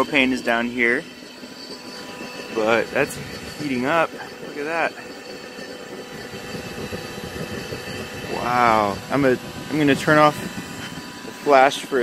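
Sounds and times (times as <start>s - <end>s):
forge burner rushing: 0.0s - 12.0s.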